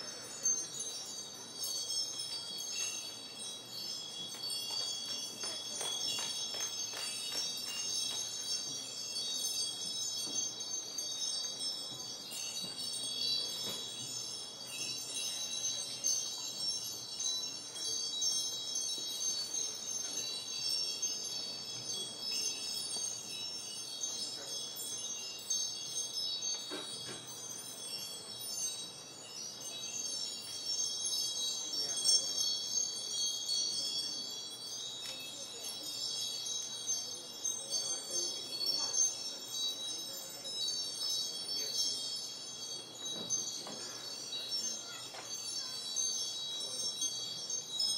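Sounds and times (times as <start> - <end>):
high bell-like chiming: 0.0 - 47.9.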